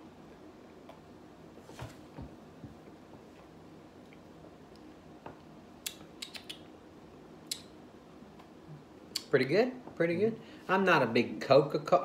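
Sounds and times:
low room hum: 0:00.0 - 0:12.0
mouth clicks and lip smacks: 0:05.8 - 0:06.7, 0:07.4 - 0:07.7, 0:09.1 - 0:09.3.

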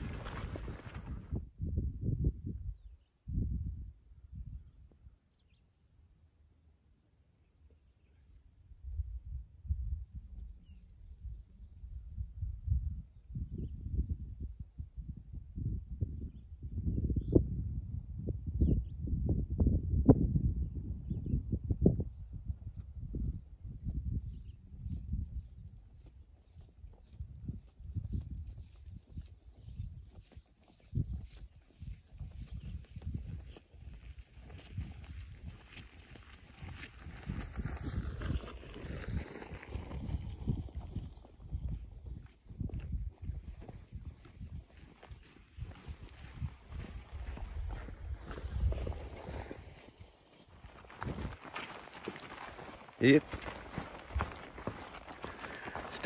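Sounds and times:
footsteps through wet grass: 0:00.0 - 0:01.4, 0:24.9 - 0:41.2, 0:43.1 - 0:56.0
wind buffeting microphone: 0:00.0 - 0:04.8, 0:08.8 - 0:56.0.

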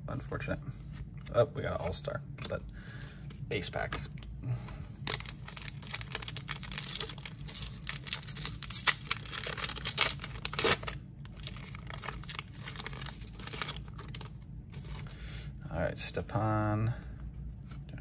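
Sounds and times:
foil wrapper tearing and crinkling: 0:05.0 - 0:15.1.

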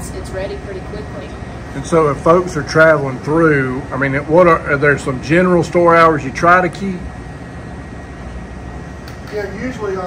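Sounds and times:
room machinery humming: 0:00.0 - 0:10.0.

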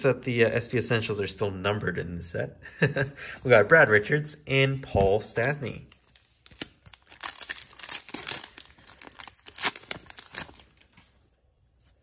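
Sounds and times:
card pack wrapper ripping: 0:05.9 - 0:11.3.

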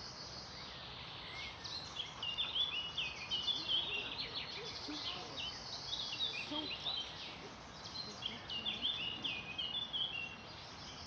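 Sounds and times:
birds chirping: 0:00.0 - 0:11.0
outdoor background hiss: 0:00.0 - 0:11.0.

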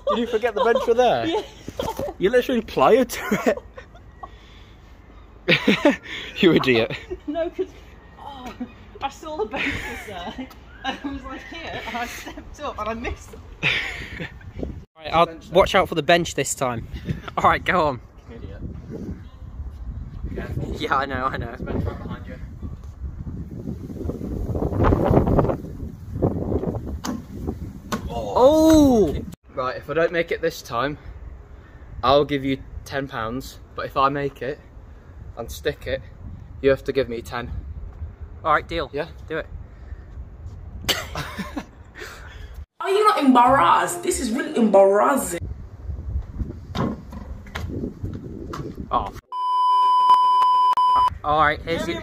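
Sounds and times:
wind buffeting microphone: 0:11.1 - 0:29.4, 0:34.7 - 0:40.9, 0:45.4 - 0:49.2.

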